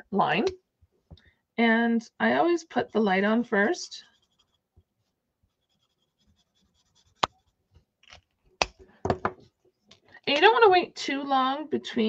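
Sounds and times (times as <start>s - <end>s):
marker scratching on cardstock: 3.9s - 7.6s.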